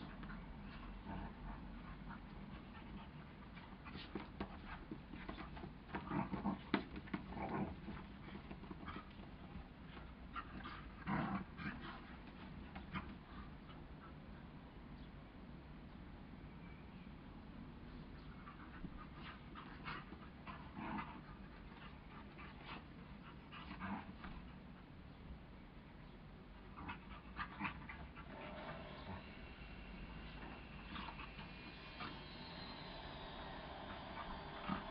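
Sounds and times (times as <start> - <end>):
dogs play-fighting growls: 0.0 - 14.4, 18.1 - 25.0, 26.5 - 34.9
faint dog vocal sounds: 26.0 - 34.9.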